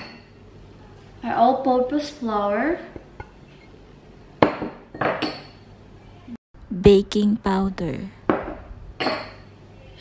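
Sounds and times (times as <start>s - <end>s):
bowls knocking on hard counter: 4.4s - 5.6s, 8.3s - 9.4s.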